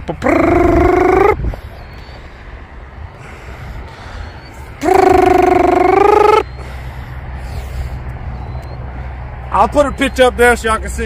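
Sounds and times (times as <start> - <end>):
wind rumble on microphone: 0.0 - 6.2
man making rolled trill: 0.2 - 1.4, 4.8 - 6.5.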